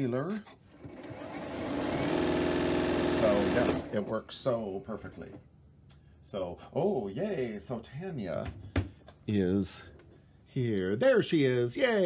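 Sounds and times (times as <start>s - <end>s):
sewing machine stitching: 0.7s - 4.2s.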